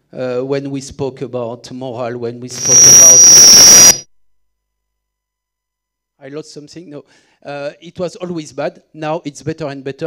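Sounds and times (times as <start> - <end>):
harsh static rush: 2.6 - 4.0
steady high whine: 2.6 - 4.0.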